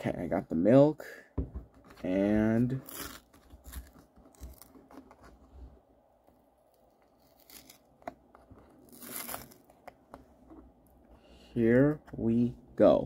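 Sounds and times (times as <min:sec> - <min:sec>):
carton ripping: 0:02.8 - 0:05.2, 0:07.1 - 0:09.9
paper carton tearing and crinkling: 0:02.8 - 0:05.2, 0:07.1 - 0:07.9, 0:08.7 - 0:09.8.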